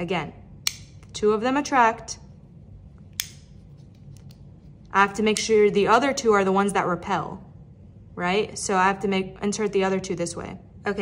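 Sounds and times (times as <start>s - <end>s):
magnets snapping together: 0.6s - 1.2s, 3.1s - 4.4s.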